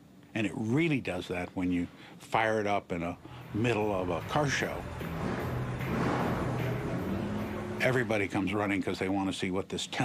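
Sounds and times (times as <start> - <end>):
motorcycle engine droning: 3.2 - 8.4.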